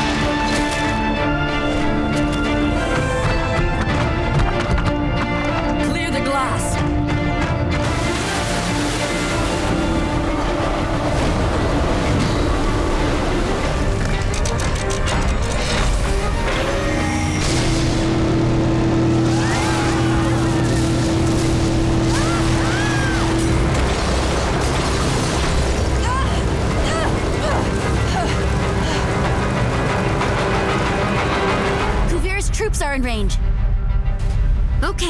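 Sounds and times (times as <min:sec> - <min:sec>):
dramatic action music: 0:00.0 - 0:35.0
explosions and impacts: 0:07.8 - 0:14.0, 0:17.2 - 0:31.9.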